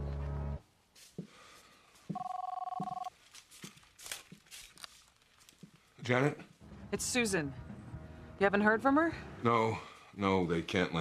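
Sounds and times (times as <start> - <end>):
telephone ringing: 2.1 - 3.1.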